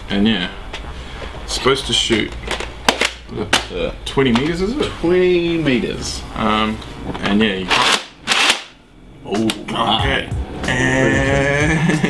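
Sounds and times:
plastic toy blaster handling noise: 7.8 - 8.7
man's voice: 9.3 - 12.0.

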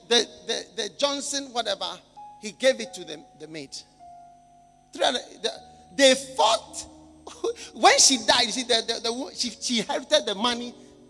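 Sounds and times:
soft held background music note: 0.0 - 11.0.

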